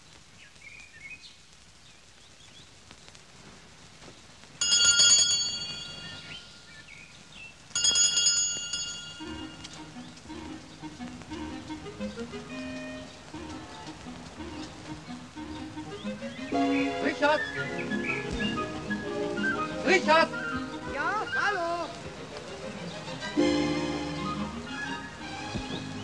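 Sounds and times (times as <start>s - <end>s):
soft low music: 9.2s - 26.0s.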